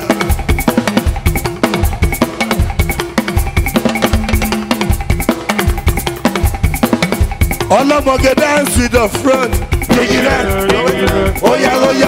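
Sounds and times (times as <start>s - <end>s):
drum kit groove: 0.0s - 12.0s
talking drum strokes: 0.0s - 12.0s
held bass line: 7.7s - 12.0s.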